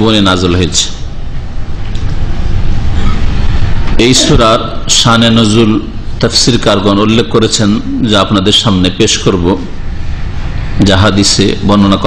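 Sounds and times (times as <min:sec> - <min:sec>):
loud steady rushing noise: 0:00.0 - 0:12.0.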